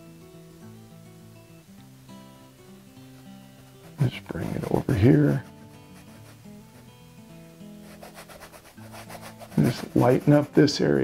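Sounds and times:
soft background music: 0.0 - 11.0
paintbrush scrubbing canvas: 3.8 - 6.9, 7.8 - 10.9.

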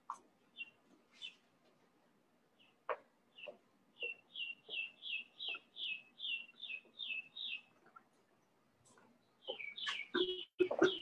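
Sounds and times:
songbird chirping: 0.0 - 1.8, 2.4 - 11.0.

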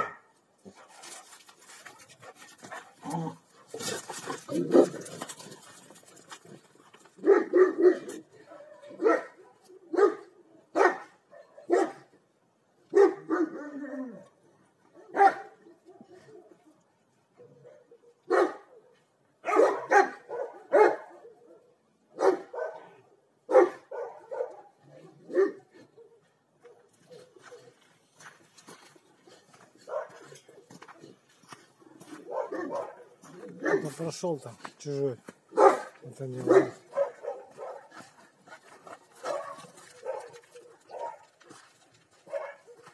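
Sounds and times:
dogs barking deeply: 2.2 - 12.1, 17.4 - 26.2, 31.9 - 34.1, 35.5 - 41.4.

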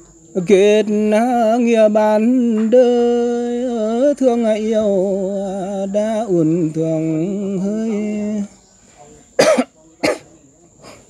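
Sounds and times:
person coughing: 9.4 - 10.3.

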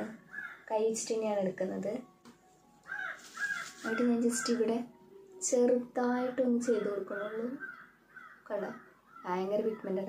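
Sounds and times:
crow cawing: 0.2 - 0.7, 2.8 - 4.8, 6.6 - 10.0.

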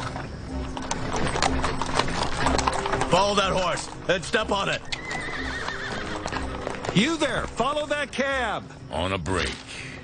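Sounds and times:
music: 0.0 - 10.0
horse neighing: 1.0 - 7.6.

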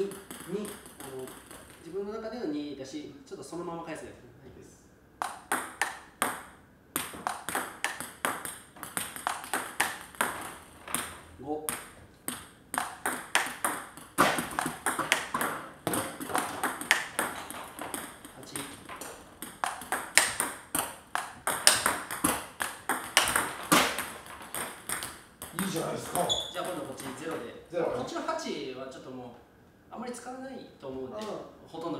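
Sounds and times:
table tennis ball clicks: 5.2 - 27.4.

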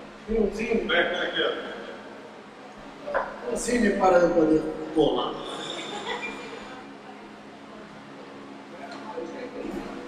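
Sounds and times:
steady low hum: 0.0 - 10.0
faint voices murmuring: 1.2 - 10.0.

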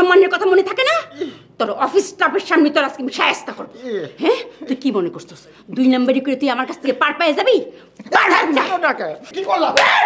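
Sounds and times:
woman shouting: 8.1 - 9.0.

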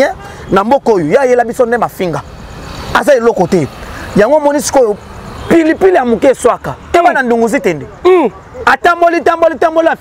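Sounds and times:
man speaking excitedly: 0.0 - 2.3, 2.9 - 10.0
vehicle passing: 0.0 - 10.0.

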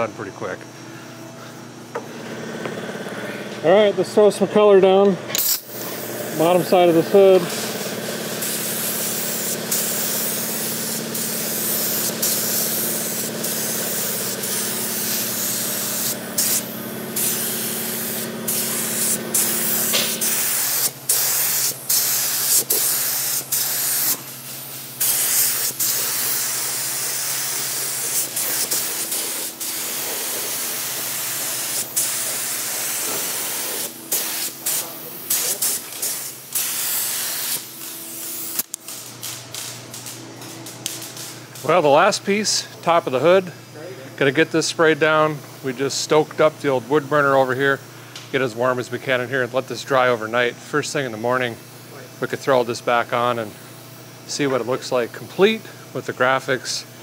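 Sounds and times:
spray gun hissing: 5.3 - 39.8.

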